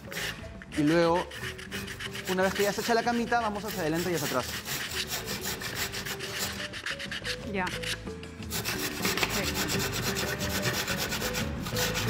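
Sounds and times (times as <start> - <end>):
handsaw cutting wood: 0.0 - 12.0.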